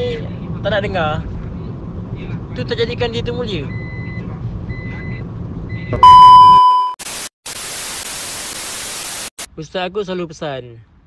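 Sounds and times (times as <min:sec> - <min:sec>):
steady test-tone beep: 0:03.7 - 0:07.0
short high beeps: 0:05.9 - 0:07.0
tv static hiss: 0:07.0 - 0:09.5.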